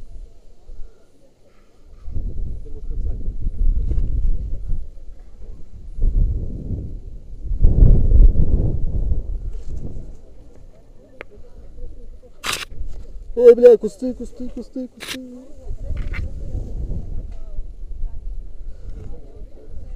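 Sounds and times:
wind rushing over microphone: 1.9s - 10.6s, 11.4s - 19.9s.

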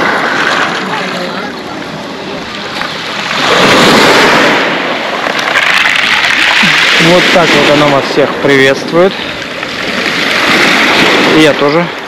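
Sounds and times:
waves washing over pebbles: 0.0s - 12.0s.

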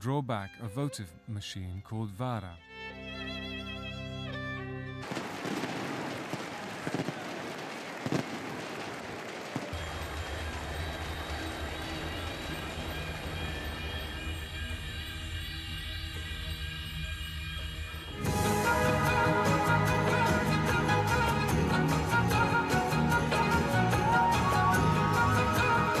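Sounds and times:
outdoor crowd noise: 5.0s - 16.8s
music with long low notes: 9.8s - 26.0s.

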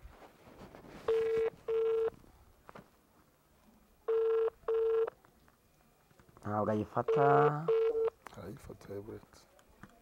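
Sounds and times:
telephone ringback tone: 1.1s - 2.1s, 4.1s - 5.1s, 7.0s - 8.2s.

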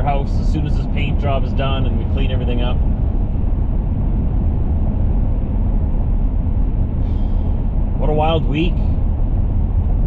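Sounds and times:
truck road noise from inside cab: 0.0s - 10.0s.

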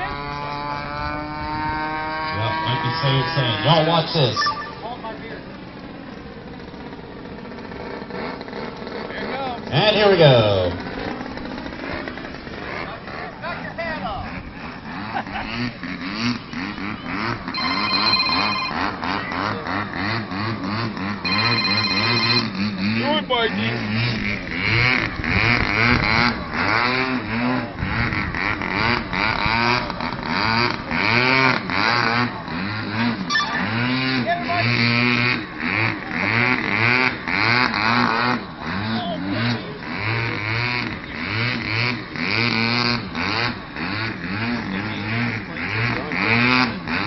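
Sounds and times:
model airplane motor drone: 0.0s - 47.0s.

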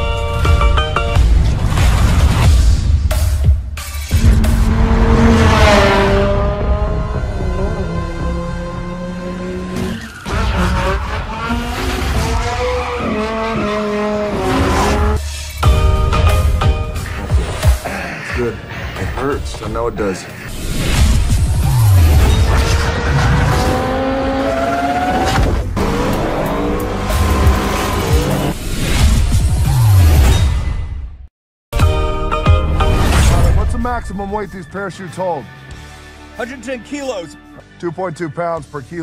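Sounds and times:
loud trailer music: 0.0s - 12.4s, 14.2s - 39.0s
sports car engine revving: 4.2s - 15.2s.

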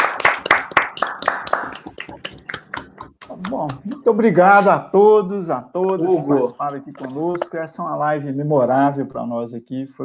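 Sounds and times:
people clapping: 0.0s - 4.1s, 6.5s - 7.6s
voices: 1.2s - 5.0s, 5.7s - 8.3s.

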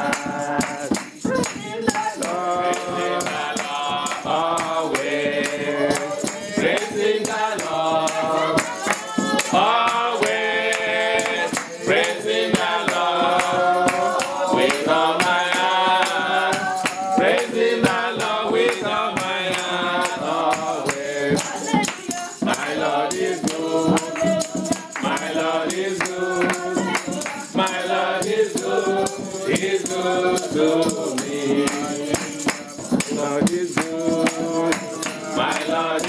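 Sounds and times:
group singing gospel chorus: 0.0s - 36.0s
hand clapping: 0.0s - 36.0s
tambourine jingling: 0.0s - 36.0s.

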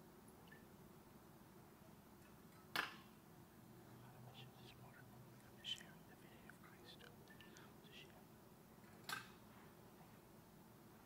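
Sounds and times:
man whispering a prayer: 4.0s - 8.3s.

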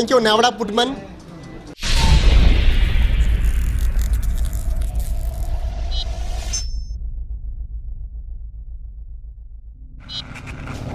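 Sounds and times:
deep bass rumble: 1.8s - 10.9s.

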